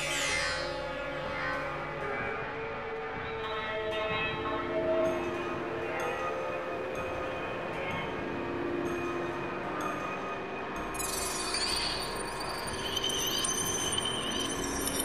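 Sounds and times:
electronic drone of sustained tones: 0:11.0 - 0:15.0.

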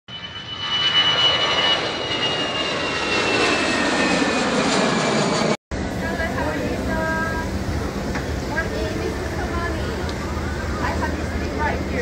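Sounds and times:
jet engines whining: 0:00.1 - 0:12.0.

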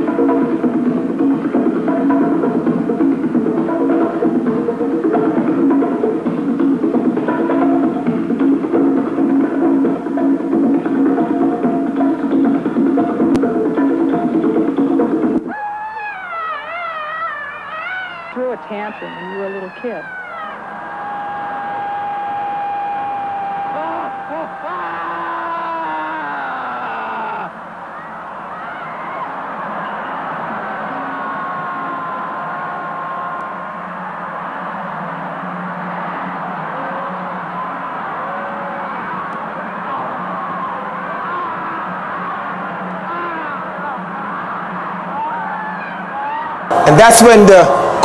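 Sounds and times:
crowd screaming and wailing: 0:14.9 - 0:48.0
long high cry: 0:15.5 - 0:33.6, 0:39.9 - 0:44.6.

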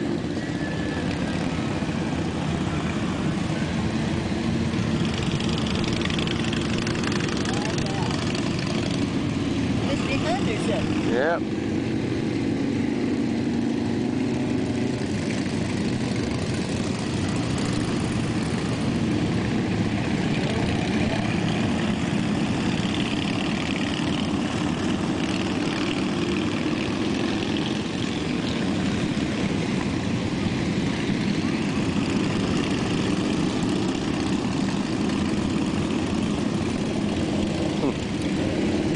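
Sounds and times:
motorcycle engines droning: 0:00.0 - 0:38.9.

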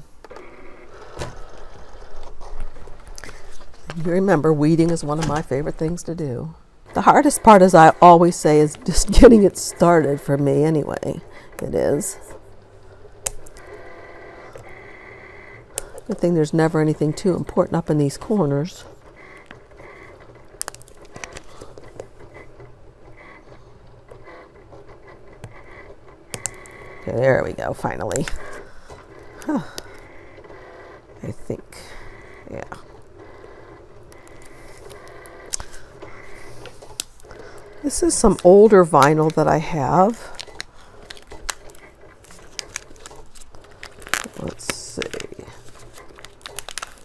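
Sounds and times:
cutting machine whine: 0:00.2 - 0:05.9, 0:06.8 - 0:47.0
vinyl peeling and scraping: 0:00.2 - 0:47.0.

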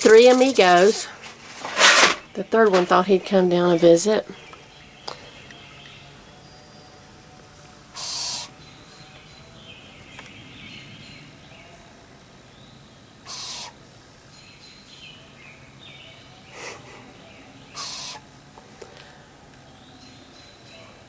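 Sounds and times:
faint bird song: 0:01.9 - 0:21.0
owlets hissing calls: 0:07.8 - 0:08.7, 0:13.2 - 0:13.9, 0:16.5 - 0:18.4.

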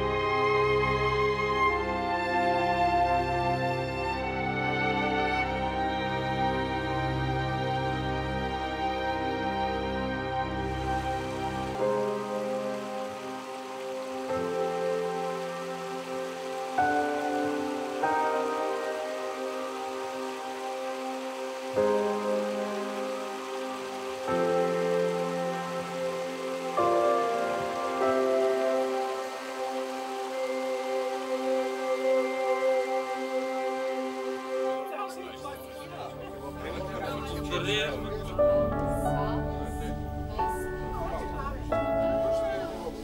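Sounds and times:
slow sustained chords music: 0:00.0 - 0:43.0.

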